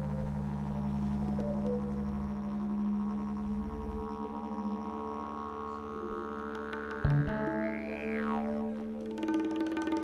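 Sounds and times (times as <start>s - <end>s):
ambient live band music: 0.0s - 10.0s
didgeridoo drone: 0.0s - 10.0s.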